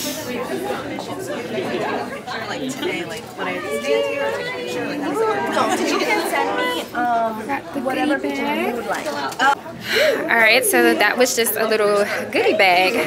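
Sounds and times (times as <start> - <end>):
people talking: 0.0 - 13.0.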